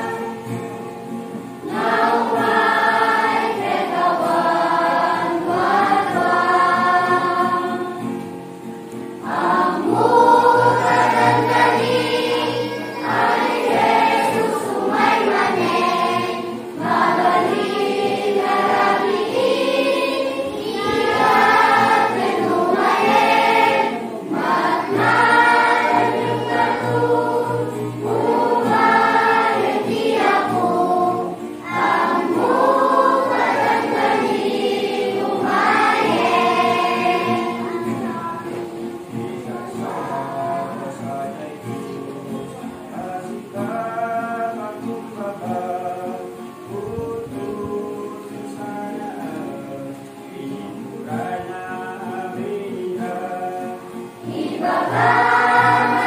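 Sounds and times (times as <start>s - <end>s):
choir of young voices singing: 0.0s - 56.0s.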